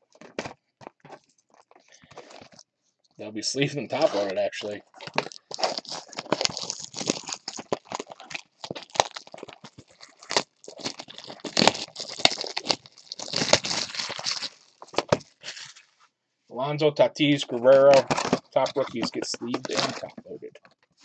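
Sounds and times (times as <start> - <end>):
plastic wrap crinkling: 0.0 - 2.6, 3.9 - 16.0, 17.5 - 21.0.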